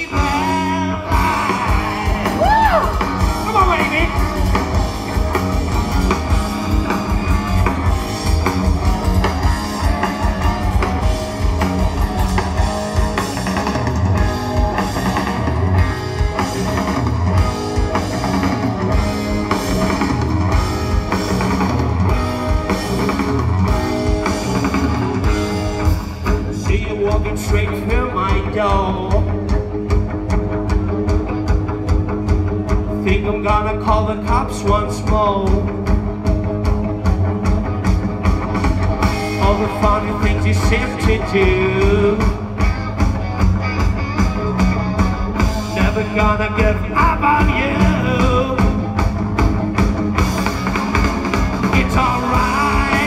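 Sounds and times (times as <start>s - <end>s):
bass guitar: 0.0s - 53.0s
drum kit: 0.0s - 53.0s
electric guitar: 0.0s - 53.0s.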